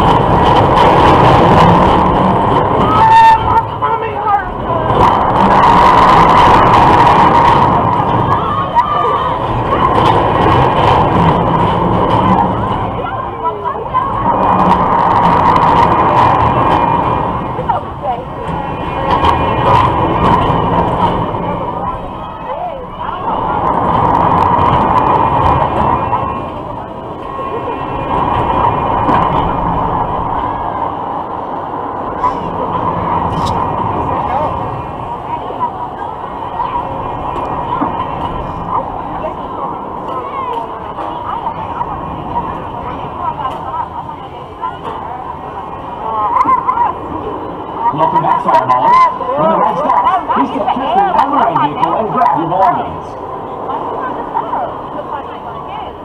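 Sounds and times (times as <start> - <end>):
ride mechanical whine: 0.0 - 56.0
rushing noise: 0.0 - 56.0.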